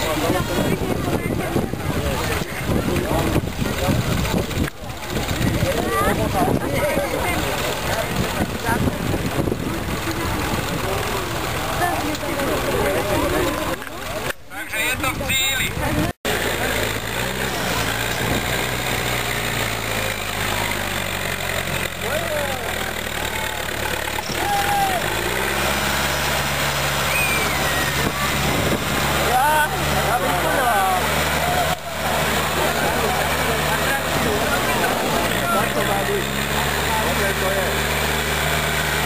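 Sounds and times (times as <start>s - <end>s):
crowd voices: 0.0s - 39.0s
tractor engine under load: 0.0s - 39.0s.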